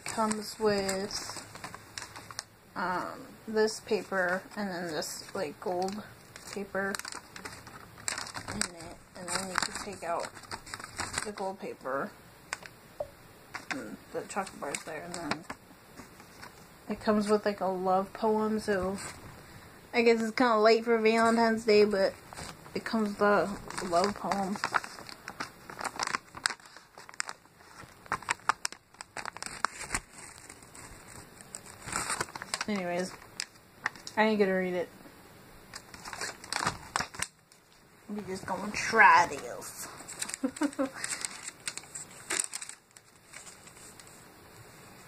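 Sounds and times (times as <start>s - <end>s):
chocolate wrapper crinkling: 0.0s - 11.8s, 12.5s - 12.8s, 13.5s - 17.3s, 21.1s - 34.2s, 35.7s - 44.2s.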